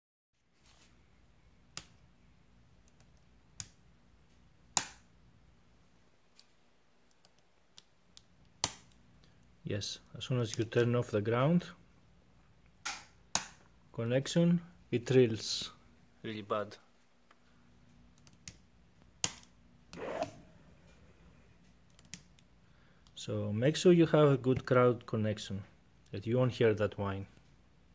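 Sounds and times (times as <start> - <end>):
faint electrical hum: 0.4 - 27.9
thin high whine: 19.7 - 22.0.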